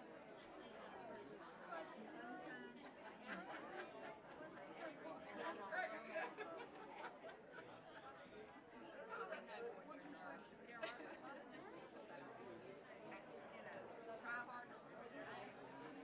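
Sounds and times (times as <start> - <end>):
chatter of many people: 0.0 - 16.0.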